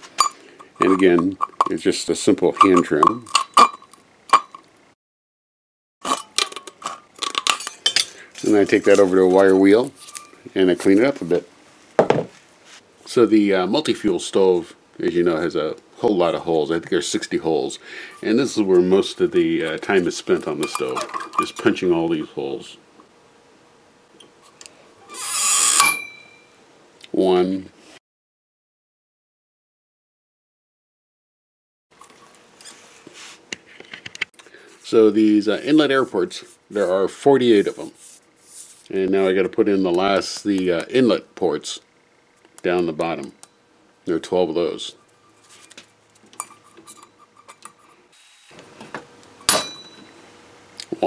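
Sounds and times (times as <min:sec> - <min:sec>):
steel can ringing: 0:25.6 - 0:26.5, 0:49.4 - 0:50.3.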